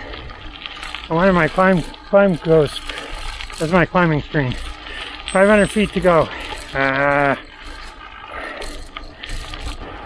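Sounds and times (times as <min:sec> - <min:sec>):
bike freehub ratchet clicking: 0:00.0 - 0:10.0
wind and tyres rumbling: 0:00.0 - 0:10.0.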